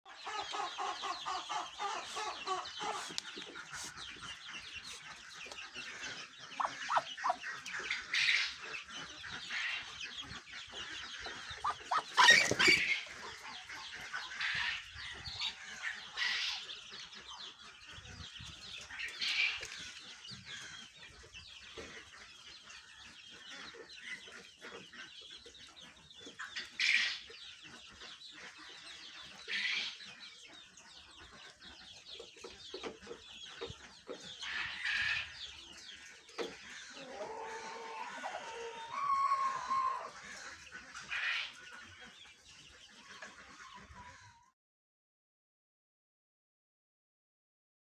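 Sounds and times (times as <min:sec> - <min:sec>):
poultry clucking and peeping: 0:00.1 - 0:44.6.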